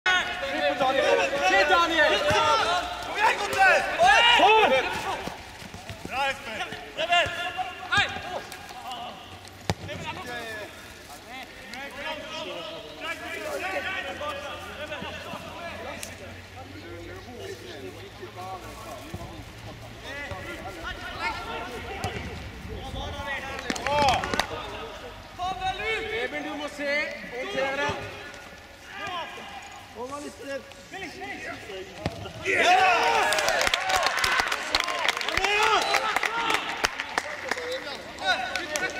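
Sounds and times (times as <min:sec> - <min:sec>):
footballers shouting: 0:00.0 - 0:10.8, 0:19.1 - 0:38.9
outdoor background noise: 0:00.0 - 0:38.9
ball being kicked: 0:09.6 - 0:10.0.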